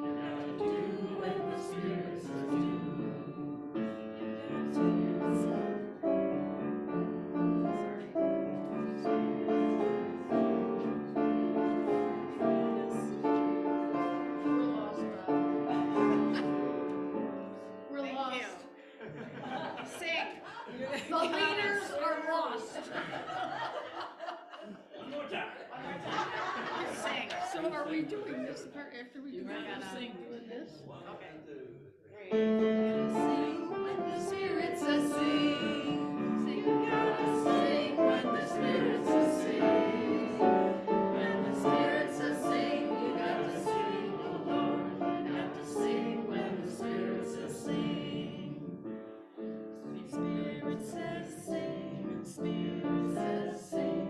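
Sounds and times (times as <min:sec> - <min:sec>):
piano playing hymn chords: 0:00.0 - 0:18.3, 0:32.3 - 0:54.0.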